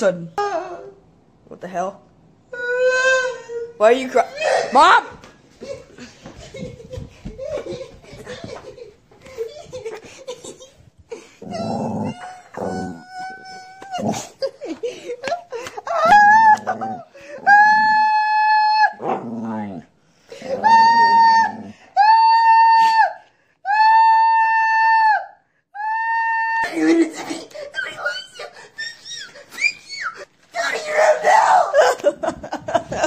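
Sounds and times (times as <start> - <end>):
person wailing and yelling: 2.5 - 5.0, 11.4 - 14.1, 15.9 - 19.0, 20.4 - 27.1, 30.6 - 32.1
dog howling: 11.5 - 14.1, 20.5 - 22.9.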